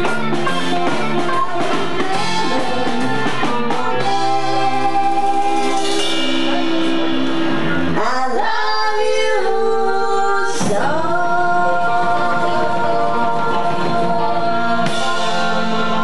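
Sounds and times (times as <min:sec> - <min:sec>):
live band playing: 0:00.0 - 0:16.0.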